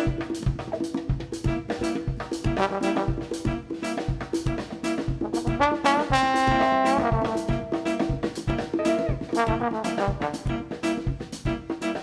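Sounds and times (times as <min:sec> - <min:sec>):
trombone soloing: 0:00.0 - 0:00.9, 0:01.5 - 0:11.1
drum kit groove: 0:00.0 - 0:12.0.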